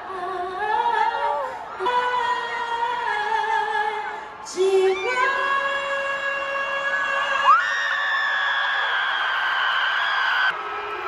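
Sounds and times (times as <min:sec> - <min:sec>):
woman singing long notes: 0:00.0 - 0:07.5
crowd noise: 0:00.0 - 0:11.0.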